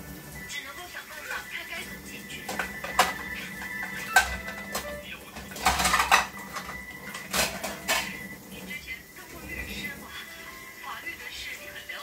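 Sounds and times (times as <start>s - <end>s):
dishes rattling: 2.3s - 8.3s
crockery clinking: 2.4s - 8.3s.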